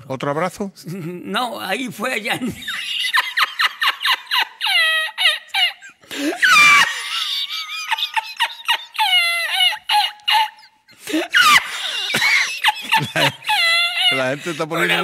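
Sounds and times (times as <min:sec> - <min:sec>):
man's high-pitched squealing laughter: 0:02.4 - 0:15.0.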